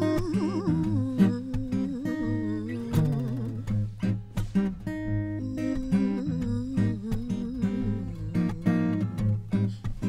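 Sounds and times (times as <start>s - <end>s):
woman humming: 0.0s - 3.9s, 5.3s - 9.8s
acoustic guitar strumming: 0.0s - 10.0s.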